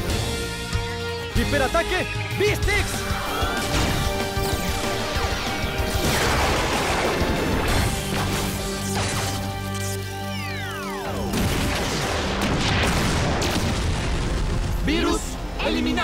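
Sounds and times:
dramatic background music: 0.0 - 16.0
explosions: 5.2 - 8.5, 11.2 - 15.2.

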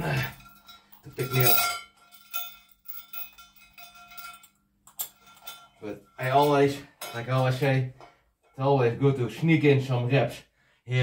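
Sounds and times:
chain clinking against metal plate: 0.0 - 8.6.

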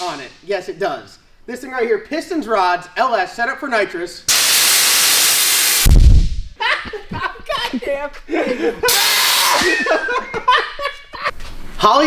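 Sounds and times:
gas jetting from bottle valve: 4.3 - 6.3, 8.9 - 9.6
man laughing: 6.6 - 11.3.

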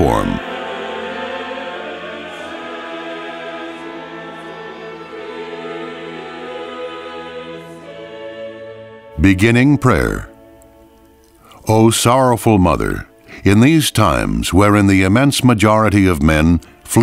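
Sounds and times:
choir singing sustained chords: 0.0 - 15.1.

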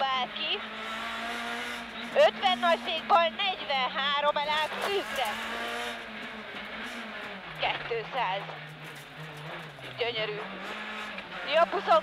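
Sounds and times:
rally car engine from inside cabin: 0.0 - 12.0.

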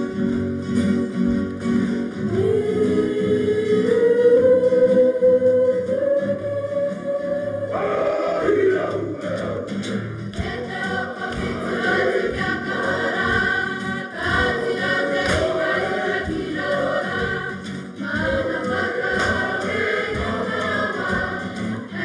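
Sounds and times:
girls singing together: 2.2 - 9.8, 10.4 - 22.0.

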